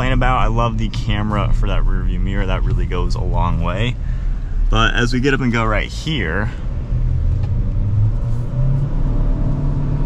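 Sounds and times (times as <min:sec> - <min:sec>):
car engine accelerating: 0:00.0 - 0:10.0
road noise: 0:00.0 - 0:10.0.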